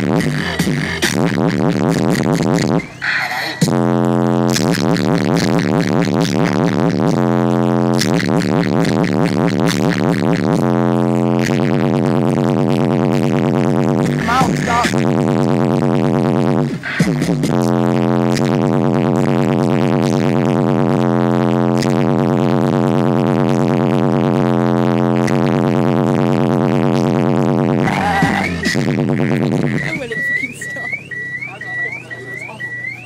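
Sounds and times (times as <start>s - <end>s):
electronic music with wobbling bass: 0.0s - 33.0s
car alarm siren: 2.6s - 5.0s, 27.8s - 28.8s, 29.4s - 33.0s.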